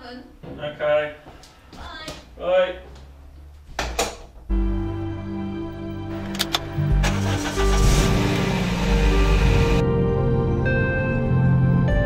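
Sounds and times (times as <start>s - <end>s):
background music: 4.4s - 12.0s
car engine starting and running: 6.1s - 9.8s.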